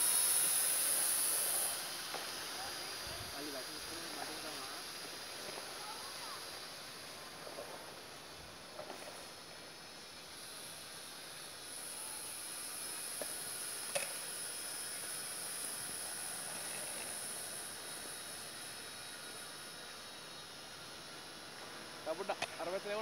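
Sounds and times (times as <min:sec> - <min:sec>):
quadcopter motors whining: 0:00.0 - 0:23.0.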